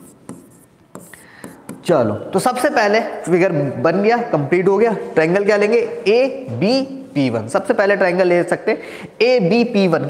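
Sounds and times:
stylus tapping and scratching glass: 0:00.0 - 0:01.9.

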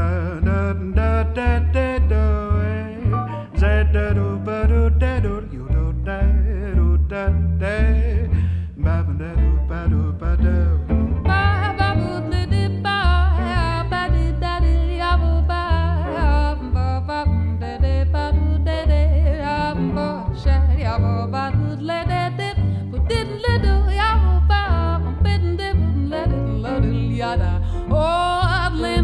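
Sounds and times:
acoustic guitar: 0:00.0 - 0:29.0
bass notes: 0:00.0 - 0:29.0
woman singing with vibrato: 0:11.3 - 0:29.0.

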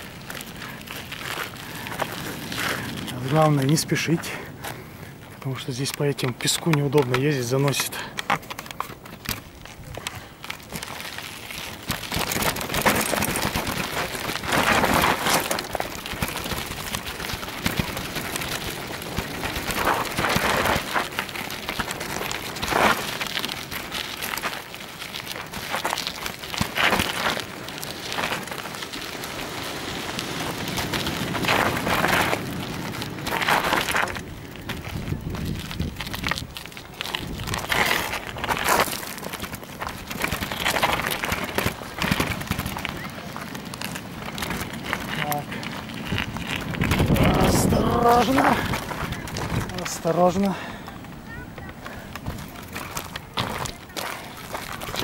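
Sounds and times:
bicycle tyres crunching on gravel: 0:00.0 - 0:55.0.

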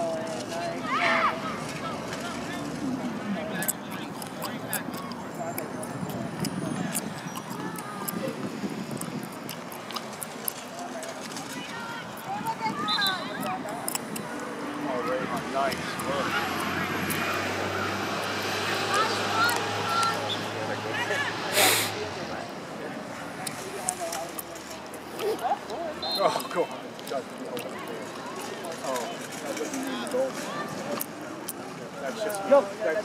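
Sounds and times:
distant shouts and voices: 0:00.0 - 0:09.6, 0:10.6 - 0:33.0.

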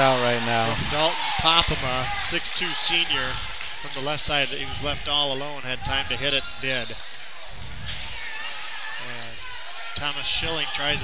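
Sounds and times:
gym and crowd noise: 0:00.0 - 0:11.0.

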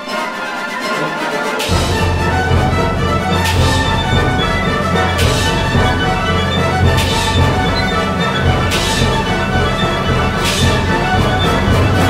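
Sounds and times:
orchestra playing loudly: 0:00.0 - 0:12.0
cymbal crash: 0:01.6 - 0:11.8.

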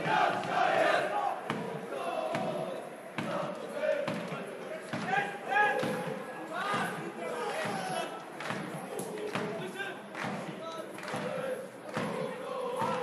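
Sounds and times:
people shouting and chanting: 0:00.0 - 0:13.0.

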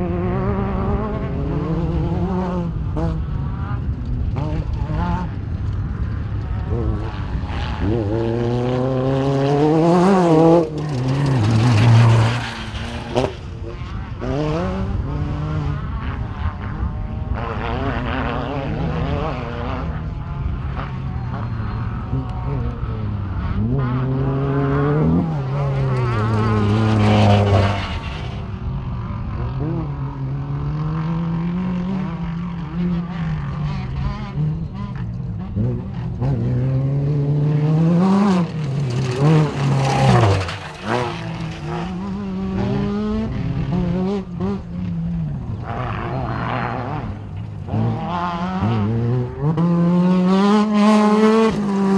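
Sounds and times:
off-road vehicle engines revving: 0:00.0 - 0:51.9.

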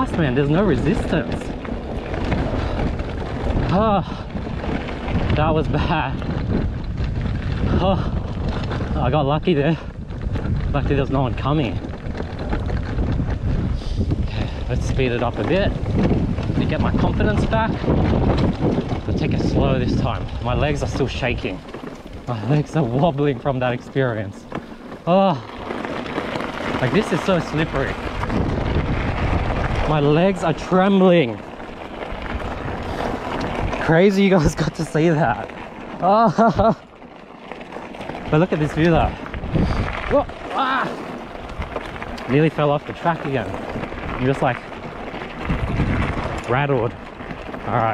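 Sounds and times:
tyres rolling over gravel: 0:00.0 - 0:47.9
wind buffeting microphone: 0:00.0 - 0:47.9.

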